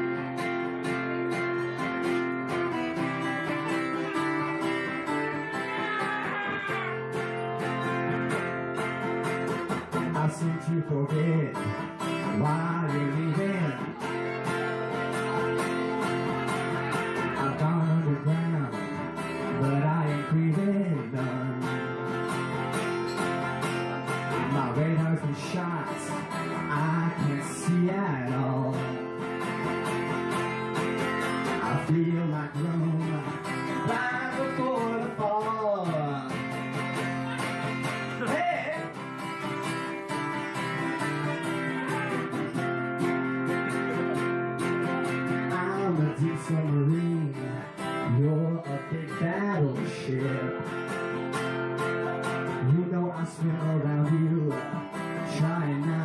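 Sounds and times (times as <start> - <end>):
acoustic guitar strumming: 0.0 - 56.0
man singing: 2.7 - 22.5, 23.2 - 56.0.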